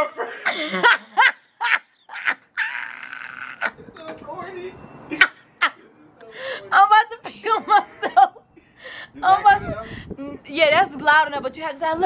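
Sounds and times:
people laughing: 0:00.0 - 0:04.2, 0:05.1 - 0:06.5, 0:07.2 - 0:09.2.

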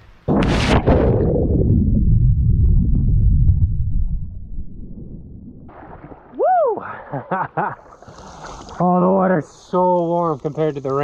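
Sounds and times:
underwater churning and bubbling: 0:00.7 - 0:07.1.

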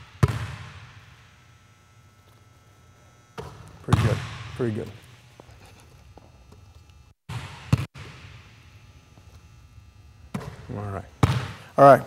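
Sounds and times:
basketball bouncing on hardwood floor: 0:00.2 - 0:00.7.

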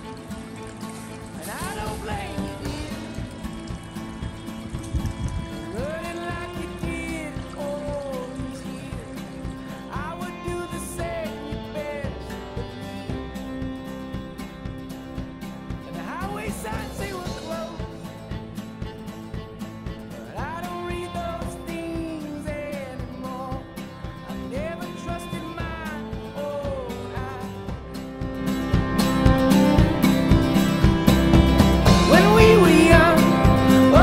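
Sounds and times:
country song with guitar: 0:00.0 - 0:34.0.

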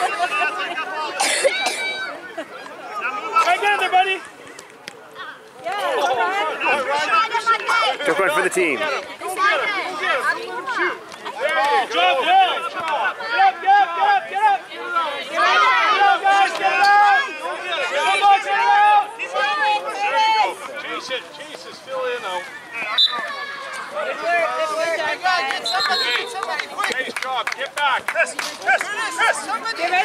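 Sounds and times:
overlapping voices chattering: 0:00.0 - 0:30.0.

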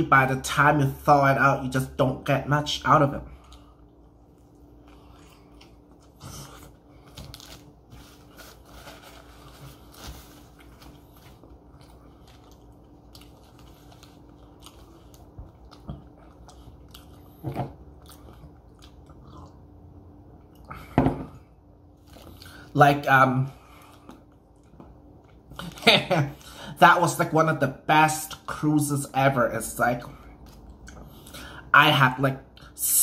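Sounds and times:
chewing with mouth clicks: 0:03.3 - 0:07.6, 0:10.6 - 0:19.8, 0:30.3 - 0:31.4.

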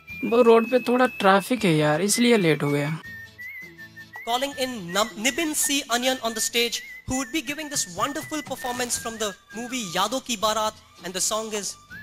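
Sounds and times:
high whistle-like tone: 0:00.0 - 0:10.6.

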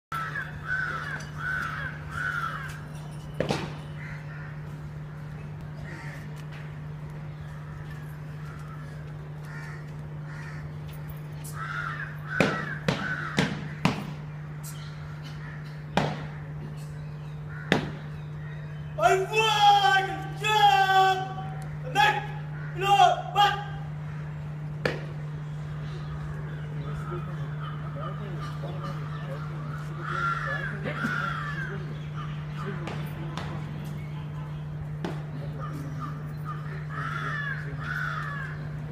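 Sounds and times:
crows cawing: 0:00.1 - 0:03.0, 0:04.0 - 0:06.6, 0:07.4 - 0:16.7, 0:17.4 - 0:24.6, 0:26.9 - 0:33.0, 0:35.4 - 0:38.9
bird calling: 0:00.1 - 0:06.4, 0:07.2 - 0:24.6, 0:25.2 - 0:38.9
steady low hum: 0:00.1 - 0:38.9
sharp knocks: 0:12.4 - 0:14.2, 0:17.7 - 0:18.0.

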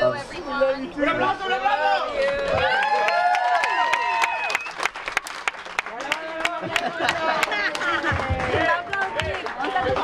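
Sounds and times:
people applauding: 0:02.1 - 0:10.0.

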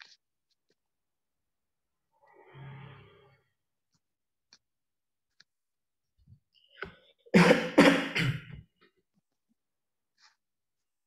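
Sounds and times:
person coughing: 0:07.3 - 0:08.6.

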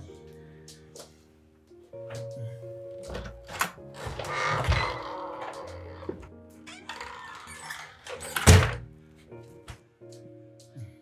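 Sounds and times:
soft background music: 0:00.0 - 0:11.0
wooden door shutting: 0:03.1 - 0:08.9.

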